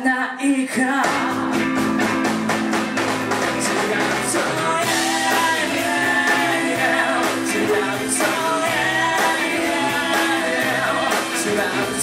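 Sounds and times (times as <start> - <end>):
electric guitars: 0.8 - 12.0
drum kit beat: 1.0 - 12.0
electric bass: 1.0 - 12.0.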